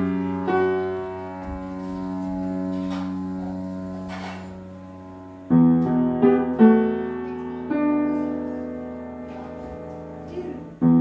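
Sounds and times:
piano sustained chord: 0.0s - 11.0s.

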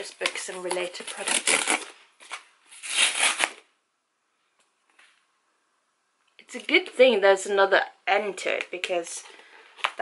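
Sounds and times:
cardboard mailer tearing: 0.9s - 1.9s, 2.7s - 3.6s.

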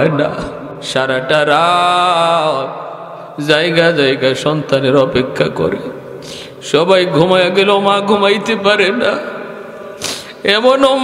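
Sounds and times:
man chanting into microphone: 0.0s - 6.0s.

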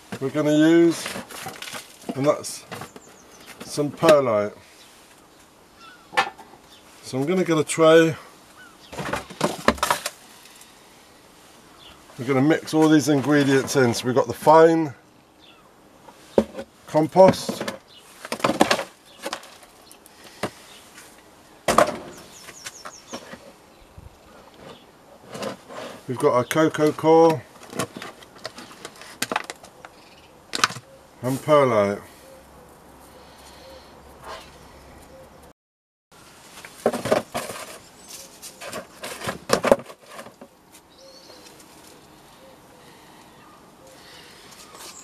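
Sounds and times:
plastic plant pots clattering: 0.0s - 4.4s, 8.9s - 10.6s, 12.6s - 14.6s, 16.3s - 19.8s, 24.6s - 29.9s, 36.5s - 40.6s
plastic trays rustling and scraping: 0.0s - 4.4s, 8.8s - 10.7s, 12.2s - 14.6s, 16.1s - 23.6s, 24.3s - 29.8s, 36.4s - 42.0s.

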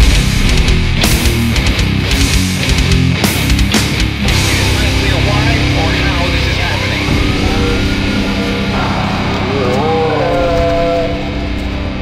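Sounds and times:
heavy metal music: 0.0s - 12.0s
voice with music: 0.0s - 12.0s.

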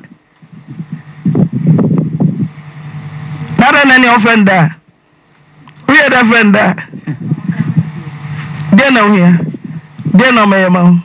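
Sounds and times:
low rumbling hum: 0.1s - 11.0s.

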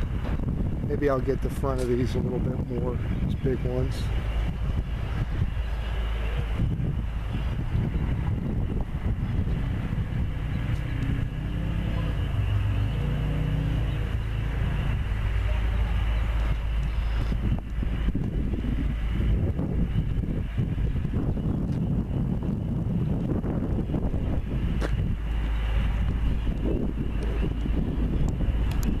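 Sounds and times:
engine running: 0.0s - 29.0s
wind rumbling on microphone: 0.0s - 29.0s.

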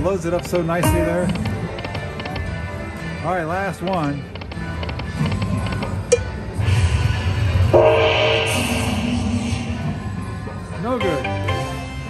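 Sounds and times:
slot machine reels clicking: 0.0s - 2.6s
low rumble: 6.4s - 10.8s.

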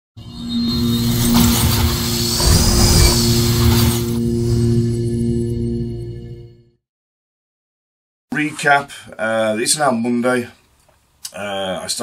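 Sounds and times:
loud whoosh: 0.2s - 5.2s
bright rising and falling tone: 0.2s - 6.5s.

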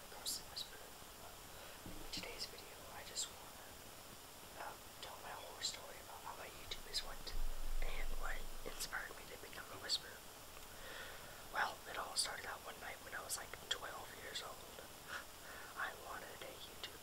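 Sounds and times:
person whispering: 0.0s - 1.0s, 2.0s - 3.7s, 4.6s - 10.2s, 11.5s - 14.9s, 15.7s - 17.0s.

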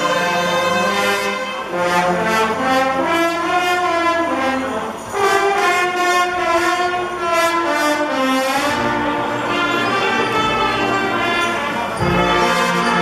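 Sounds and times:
brass band playing chords: 0.0s - 13.0s
percussion beats: 0.0s - 13.0s.

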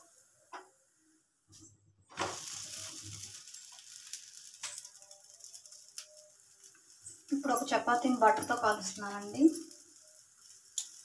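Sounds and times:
flatbread sizzling on a pan: 1.6s - 11.0s.

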